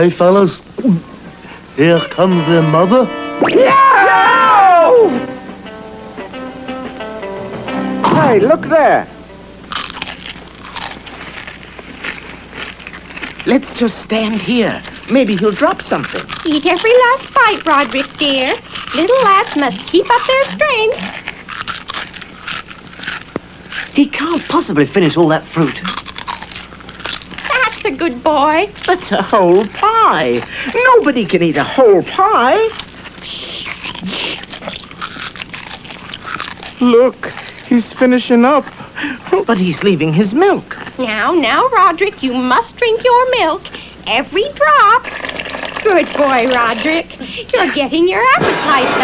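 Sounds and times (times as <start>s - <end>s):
boy munching crunchy food: 9.6s - 27.9s, 32.6s - 38.1s, 45.0s - 47.6s.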